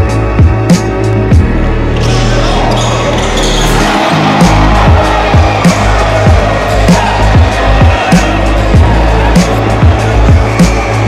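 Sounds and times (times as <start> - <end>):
background music with deep bass: 0.0 - 11.0
kick drum beat: 4.0 - 10.7.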